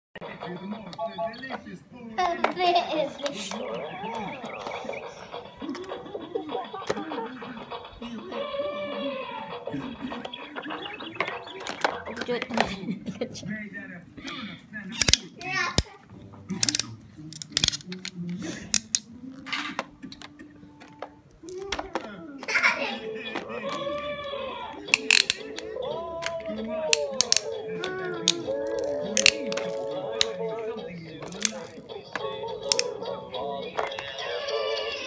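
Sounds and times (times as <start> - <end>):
plastic toys clacking: 2.4 - 7.9, 10.1 - 12.8, 14.9 - 15.9, 16.5 - 34.9.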